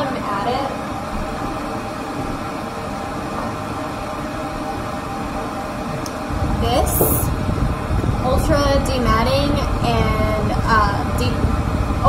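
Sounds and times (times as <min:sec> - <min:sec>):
faint motor hum: 0:00.0 - 0:12.0
grooming dryer blowing: 0:00.4 - 0:12.0.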